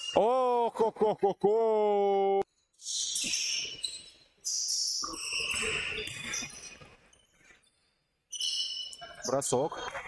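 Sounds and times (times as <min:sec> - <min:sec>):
sneakers squeaking on floor: 0:02.7 - 0:10.0.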